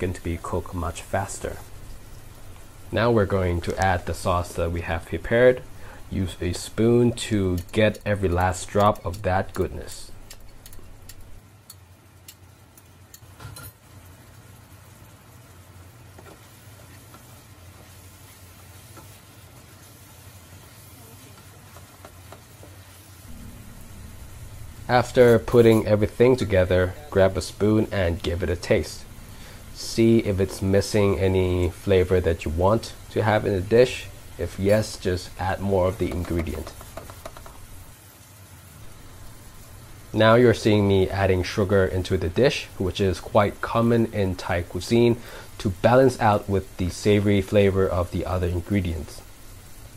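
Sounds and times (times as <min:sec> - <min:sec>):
chicken sizzling in a pan: 0:00.0 - 0:49.9
low hum: 0:23.2 - 0:36.0.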